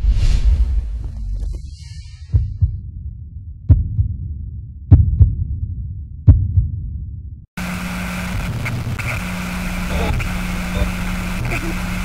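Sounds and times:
deep bass thumps: 0:00.0 - 0:07.4
low hum: 0:00.0 - 0:12.0.

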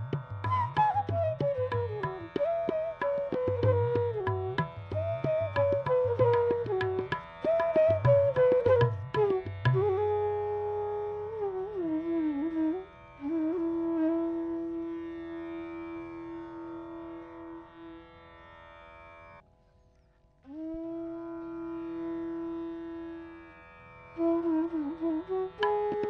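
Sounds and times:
bamboo flute playing slow phrases: 0:00.4 - 0:17.7, 0:20.4 - 0:23.4, 0:24.2 - 0:26.0.

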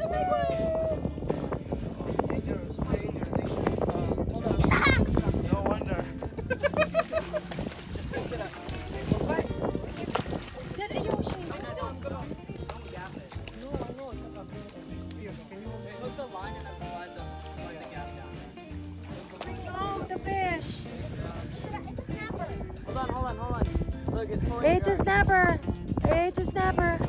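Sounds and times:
voices: 0:00.0 - 0:23.4, 0:24.4 - 0:27.0
music with repeating bass line: 0:10.8 - 0:27.0.

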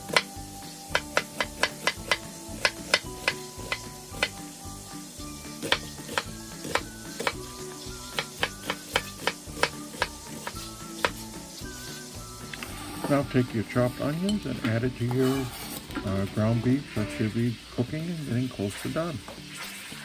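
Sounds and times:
knife chopping on wooden board: 0:00.0 - 0:00.3, 0:00.9 - 0:04.4, 0:05.6 - 0:07.5, 0:08.1 - 0:11.2.

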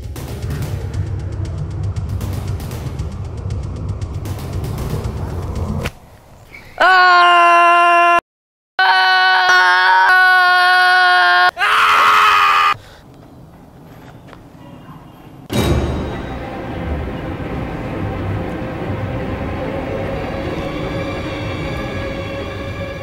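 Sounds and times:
eerie music with low drone: 0:00.0 - 0:05.9, 0:15.5 - 0:23.0
person screaming: 0:06.8 - 0:08.2, 0:08.8 - 0:12.8.

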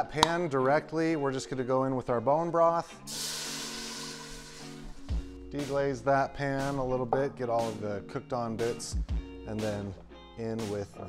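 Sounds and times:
background music: 0:00.0 - 0:11.0
broth sizzling in hot pan: 0:03.1 - 0:05.1.

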